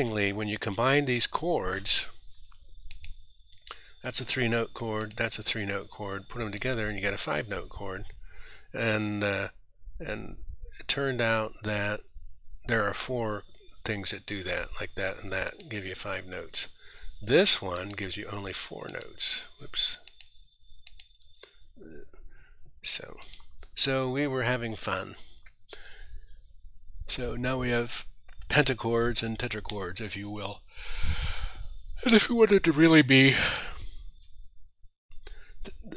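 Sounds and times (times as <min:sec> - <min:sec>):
computer mouse clicks: 0:02.9 - 0:03.6, 0:05.0 - 0:05.2, 0:17.7 - 0:18.1, 0:20.0 - 0:21.6, 0:23.2 - 0:23.8.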